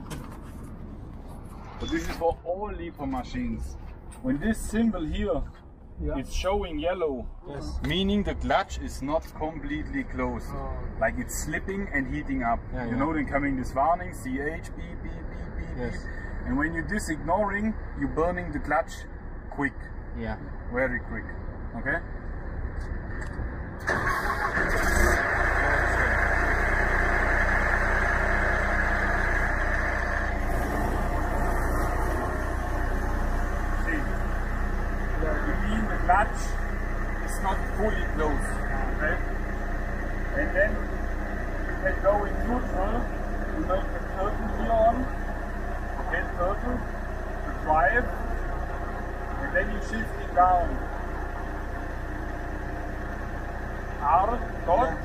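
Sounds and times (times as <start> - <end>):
diesel engine idling: 0.0 - 20.9, 22.2 - 55.0
people talking: 1.8 - 19.0, 19.6 - 22.0, 25.4 - 26.3, 33.8 - 34.2, 35.2 - 36.6, 37.2 - 39.3, 40.3 - 41.0, 41.7 - 45.1, 46.0 - 46.9, 47.5 - 48.2, 49.3 - 50.9, 54.0 - 55.0.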